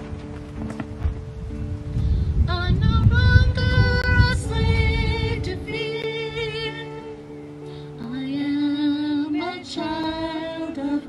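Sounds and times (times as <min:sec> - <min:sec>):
women singing a hymn: 0:02.5 - 0:11.0.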